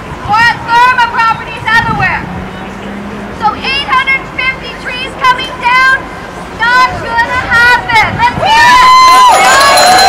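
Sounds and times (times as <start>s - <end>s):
indistinct crowd voices: 0.1s - 10.0s.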